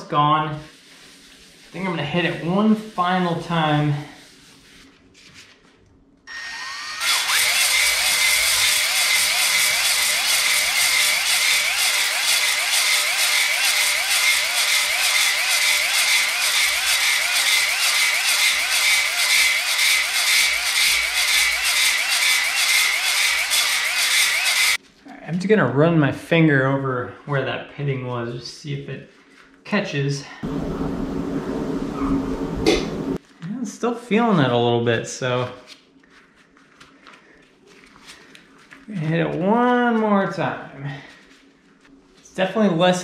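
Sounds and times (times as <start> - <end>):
cordless drill spinning hone: 6.3 - 24.8.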